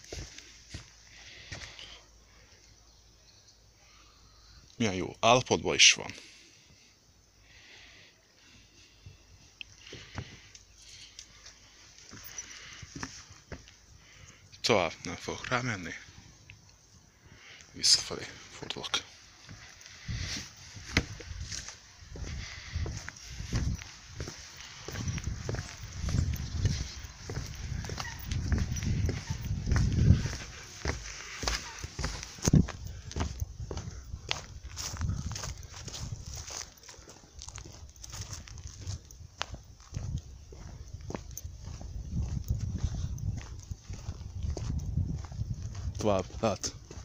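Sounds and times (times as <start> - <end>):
footsteps on wooden jetty: 0.0 - 1.8, 11.4 - 13.8, 18.6 - 47.0
wind buffeting microphone: 20.0 - 36.7, 37.3 - 47.0.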